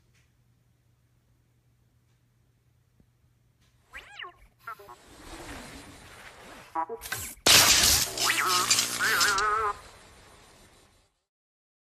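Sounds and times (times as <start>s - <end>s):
electronic warble: 4.0s - 10.9s
steady rushing noise: 4.9s - 6.8s.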